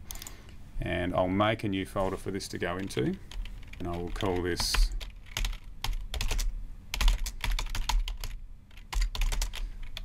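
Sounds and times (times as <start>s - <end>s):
typing on keyboard: 3.3s - 10.0s.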